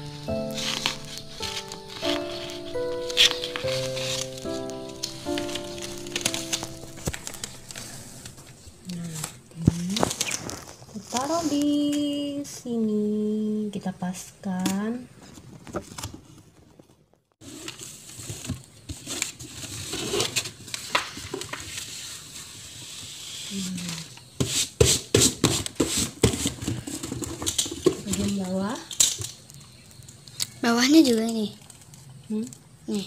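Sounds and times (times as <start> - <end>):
sticker sheet rustling: 0.0 - 12.1
woman humming: 8.8 - 10.0.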